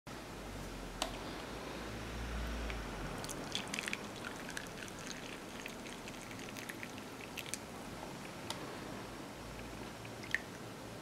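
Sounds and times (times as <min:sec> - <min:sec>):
tea pouring into a cup: 0:02.7 - 0:07.8.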